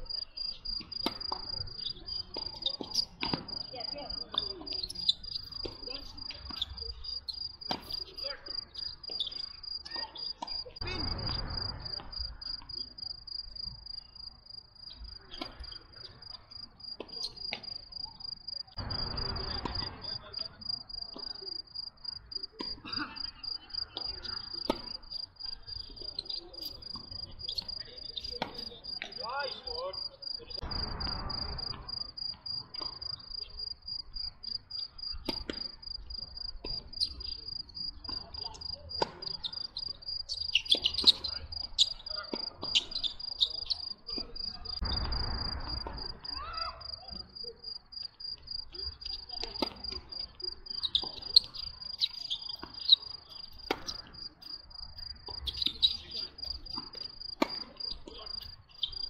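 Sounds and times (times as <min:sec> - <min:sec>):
tennis balls bouncing on court: 0:00.0 - 0:12.9, 0:15.1 - 0:29.9, 0:30.5 - 0:46.4, 0:48.4 - 0:59.0
crickets chirping: 0:00.0 - 0:59.0
tennis balls struck by rackets: 0:00.7 - 0:08.3, 0:23.9 - 0:29.8, 0:37.9 - 0:40.0, 0:49.3 - 0:54.5, 0:55.2 - 0:58.6.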